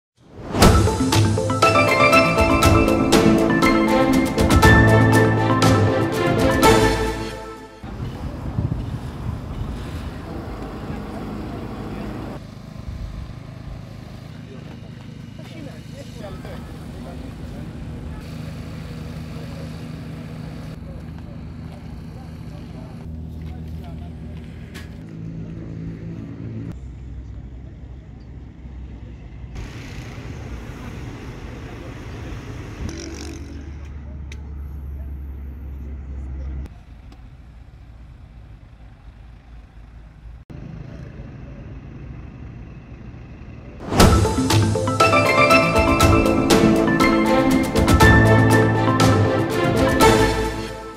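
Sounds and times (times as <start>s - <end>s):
engines running with low hum: 8.0s - 43.8s.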